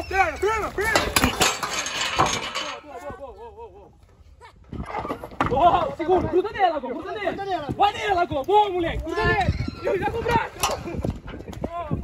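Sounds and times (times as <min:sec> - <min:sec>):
hooves thudding on dirt: 0:04.7 - 0:12.0.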